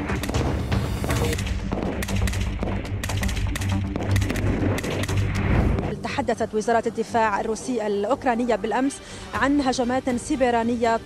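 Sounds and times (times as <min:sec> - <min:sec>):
assault rifle firing: 0:00.0 - 0:05.4
music: 0:00.0 - 0:11.0.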